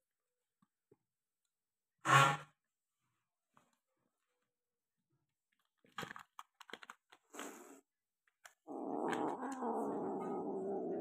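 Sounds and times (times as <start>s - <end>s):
kitten growling: 8.6s - 11.0s.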